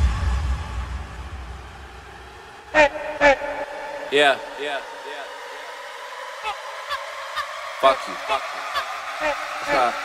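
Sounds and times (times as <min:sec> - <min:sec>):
heavy sub-bass note: 0:00.0 - 0:05.0.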